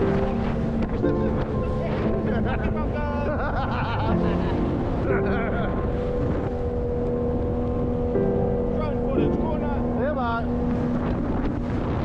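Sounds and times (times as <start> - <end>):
boat engine drone: 0.0 - 12.0
water rushing against hull: 0.0 - 12.0
wind on microphone: 0.0 - 12.0.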